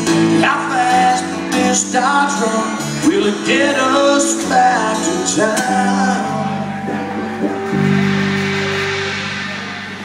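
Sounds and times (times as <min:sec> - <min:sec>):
electric guitar chord ringing: 0:02.4 - 0:10.0
high noise wash: 0:06.2 - 0:10.0.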